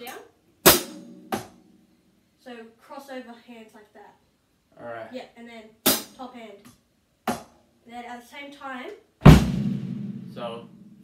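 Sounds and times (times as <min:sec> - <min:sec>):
drum kit strokes: 0:09.2 - 0:11.0.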